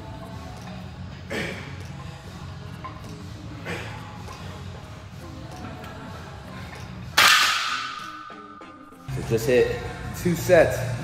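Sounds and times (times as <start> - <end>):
background music: 0.0 - 11.0
barbell clanging into rack hooks: 7.1 - 8.4
bar and plates ringing: 7.2 - 9.0.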